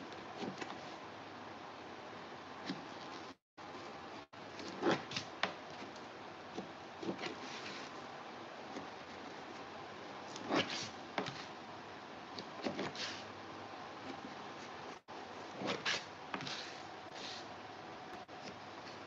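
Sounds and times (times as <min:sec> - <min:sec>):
hot knife scraping foam board: 0:04.5 - 0:08.0, 0:10.3 - 0:11.6, 0:12.4 - 0:13.3, 0:14.0 - 0:17.6.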